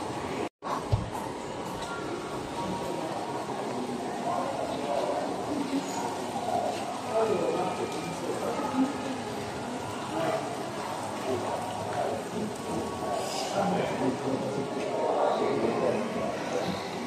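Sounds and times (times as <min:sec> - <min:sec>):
echoing indistinct voices: 0:00.0 - 0:17.0
fountain water splashing: 0:02.4 - 0:16.5.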